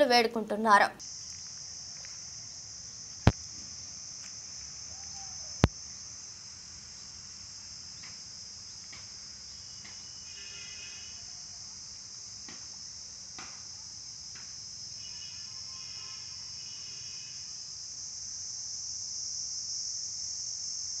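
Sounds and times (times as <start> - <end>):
insect chorus: 0.0 - 21.0.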